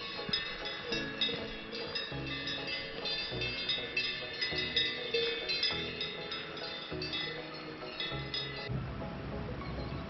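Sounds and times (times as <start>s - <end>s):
cowbells clanking: 0.0s - 8.7s.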